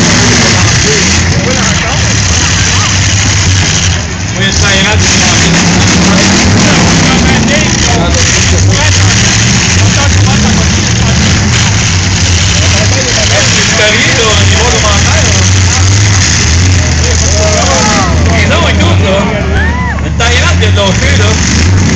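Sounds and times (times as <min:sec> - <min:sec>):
crowd shouting and cheering: 0:00.0 - 0:04.1, 0:12.4 - 0:21.5
car engines revving loudly: 0:00.0 - 0:21.9.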